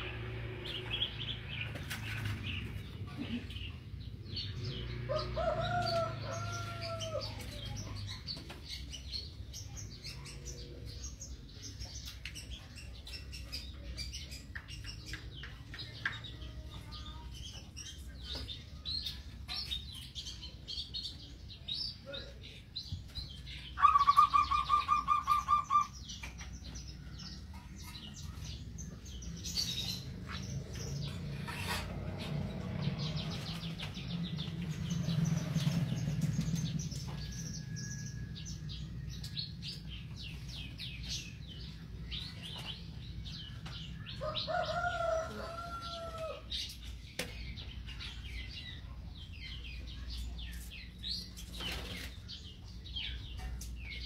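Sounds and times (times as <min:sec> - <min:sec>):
birds chirping and calling: 0:00.0 - 0:54.0.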